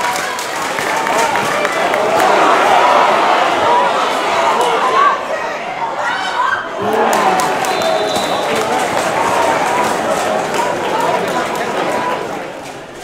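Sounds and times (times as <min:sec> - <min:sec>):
players shouting: 0:00.0 - 0:12.6
crowd noise: 0:00.0 - 0:13.0.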